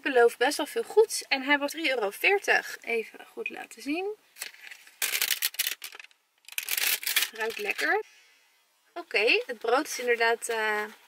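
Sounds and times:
packaging crinkling and tearing: 0:04.4 - 0:08.0.

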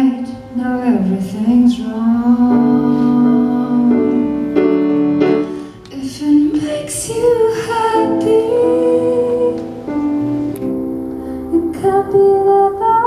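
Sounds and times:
woman singing slow song: 0:00.0 - 0:04.6, 0:05.9 - 0:10.1, 0:11.4 - 0:13.0
piano accompaniment: 0:00.0 - 0:13.0.

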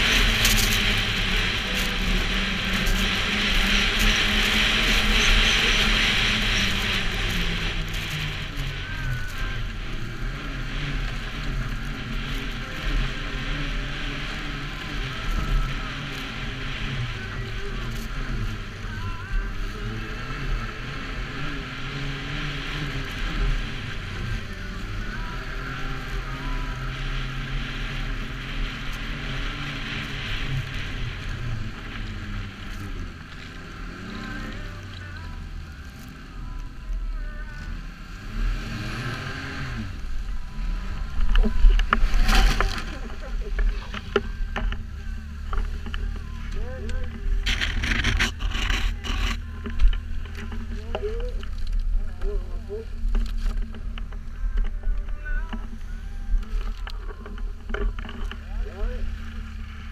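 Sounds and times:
snowmobile engine running: 0:00.0 - 0:59.9.

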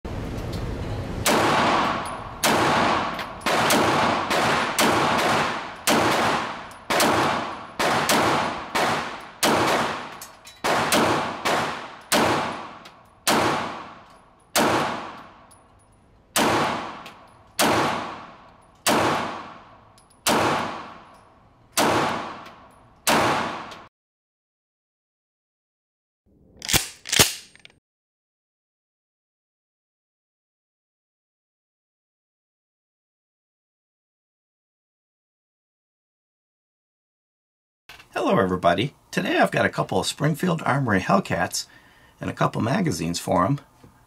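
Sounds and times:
pistol shots echoing: 0:01.3 - 0:15.5, 0:16.3 - 0:21.1, 0:21.8 - 0:23.9.

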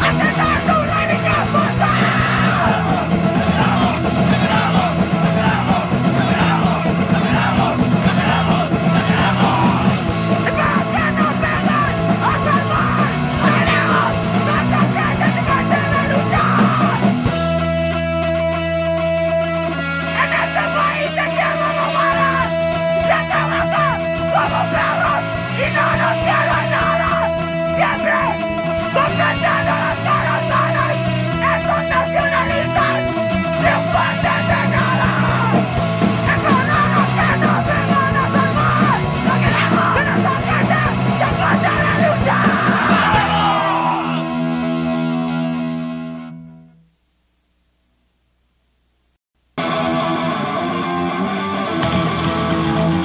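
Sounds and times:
shouted vocals: 0:00.0 - 0:17.3, 0:20.1 - 0:44.6
punk band playing fast: 0:00.0 - 0:45.7, 0:49.6 - 0:53.0
bass guitar: 0:00.0 - 0:46.9, 0:49.4 - 0:53.0
distorted electric guitars: 0:00.0 - 0:53.0
drums: 0:00.0 - 0:53.0.

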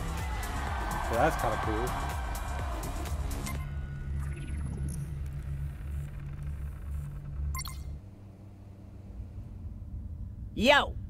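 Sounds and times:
deep bass drone: 0:00.0 - 0:11.0
faint low hum: 0:03.6 - 0:11.0.

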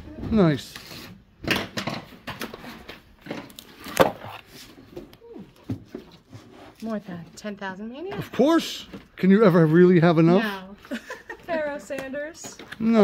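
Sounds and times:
record jackets and boxes handled: 0:00.4 - 0:09.4.

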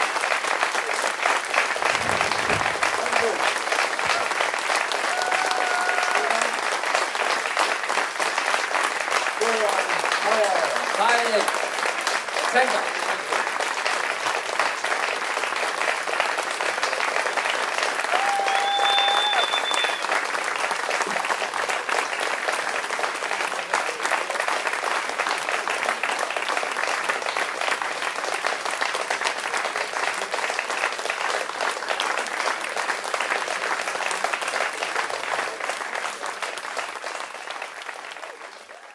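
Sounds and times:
audience applauding: 0:00.0 - 0:38.9.

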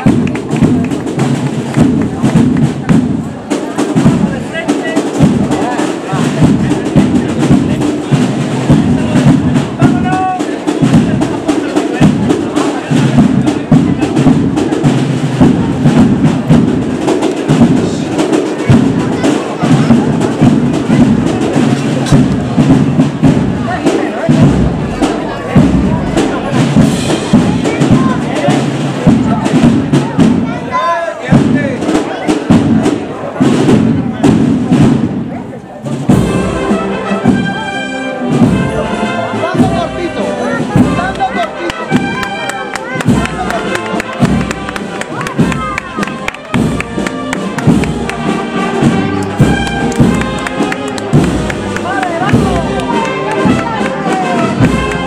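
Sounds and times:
bass drum and snare playing: 0:00.0 - 0:30.7, 0:31.3 - 0:55.0
crowd chatter: 0:00.0 - 0:55.0.

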